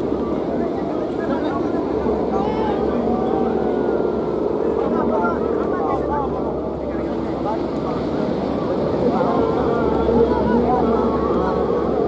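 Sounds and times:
spectators' voices overlapping: 0.0 - 12.0
steady low rumble: 0.0 - 12.0.

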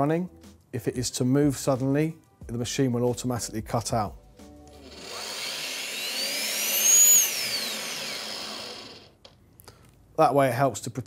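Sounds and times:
drill motor whining: 4.7 - 9.2.

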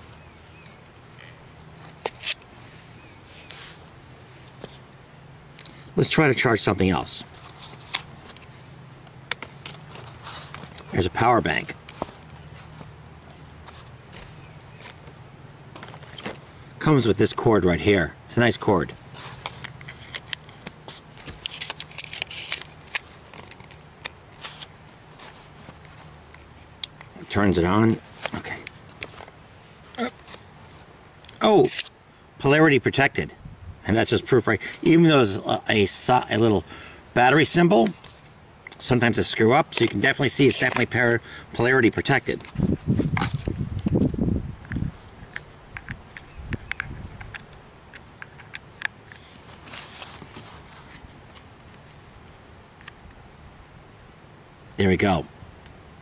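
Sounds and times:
short rustles: 9.4 - 11.0, 49.1 - 52.4.

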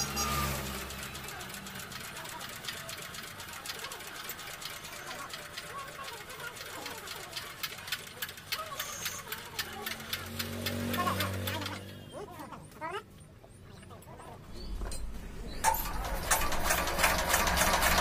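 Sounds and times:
faint voices: 0.0 - 18.0.

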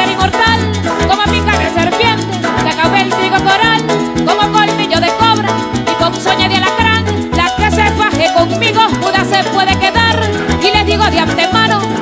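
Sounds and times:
maracas shaken: 0.0 - 12.0
plucked bass notes: 0.0 - 12.0.

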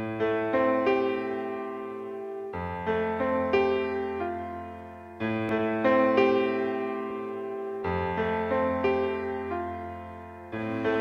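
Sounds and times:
slow keyboard music: 0.0 - 11.0.

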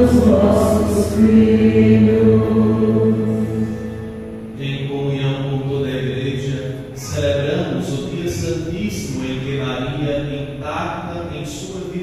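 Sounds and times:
man chanting through microphone: 4.6 - 12.0.

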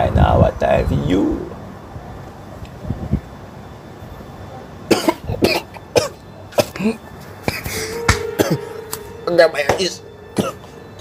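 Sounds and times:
man coughing harshly: 4.9 - 8.8, 10.4 - 10.7.

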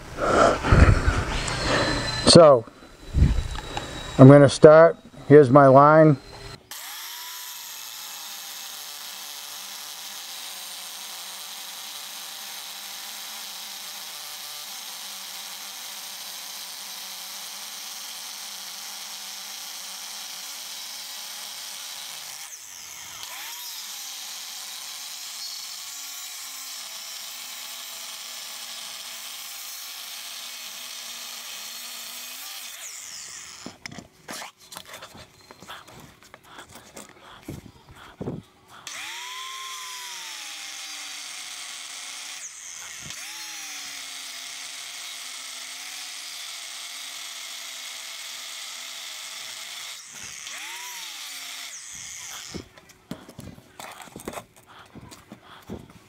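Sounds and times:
angle grinder cutting steel: 0.0 - 37.9, 38.7 - 54.4.

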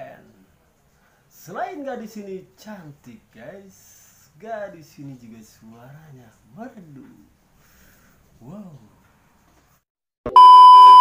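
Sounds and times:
steady test tone beep: 10.3 - 11.0.

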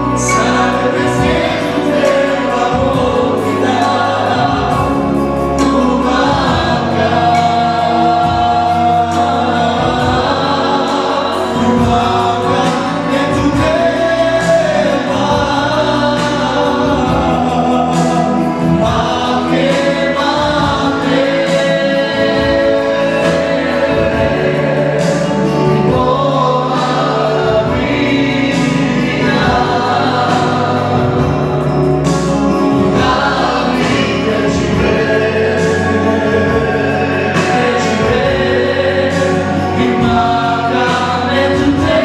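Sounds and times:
band with bass line and beat: 0.0 - 42.0
congregation singing along: 0.0 - 42.0.

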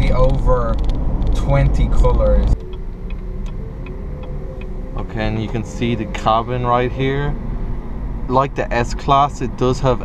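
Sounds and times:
turn signal ticking: 0.0 - 8.3
car engine and road rumble: 0.0 - 10.0.

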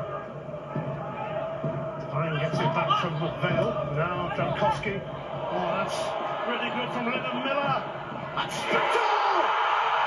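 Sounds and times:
stadium crowd noise: 0.0 - 10.0
tv commentator talking: 2.1 - 9.1.

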